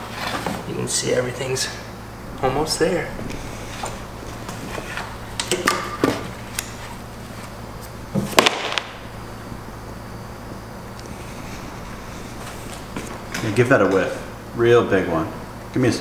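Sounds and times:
low hum: 0:01.4 - 0:14.6.

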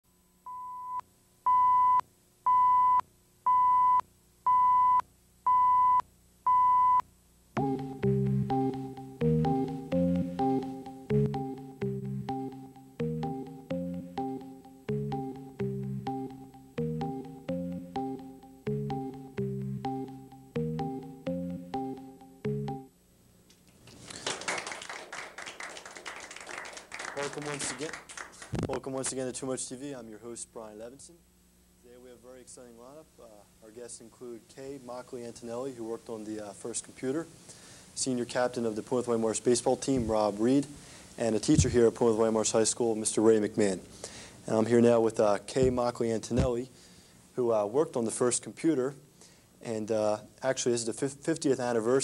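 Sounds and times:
countdown beeps: 0:00.5 - 0:07.0, 0:07.6 - 0:22.9
music: 0:07.5 - 0:23.0
audience applause: 0:23.9 - 0:28.5.

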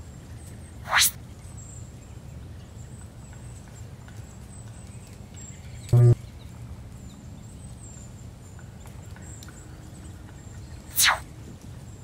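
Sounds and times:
rising whoosh: 0:11.0 - 0:11.2.

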